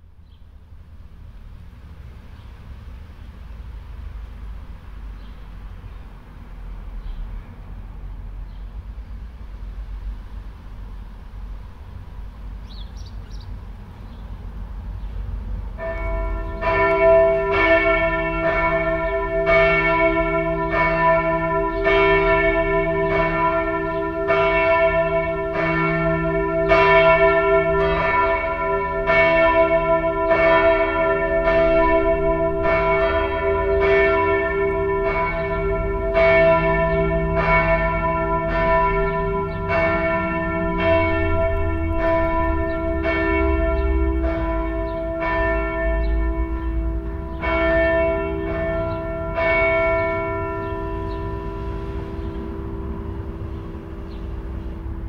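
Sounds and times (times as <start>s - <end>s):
church bells ringing: 15.6s - 55.0s.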